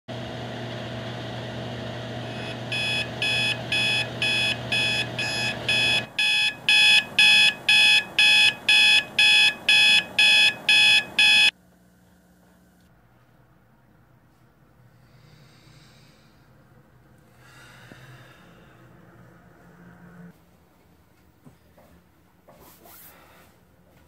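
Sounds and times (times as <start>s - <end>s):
dryers humming: 0.1s - 11.5s
alarm clock beeping: 2.3s - 11.5s.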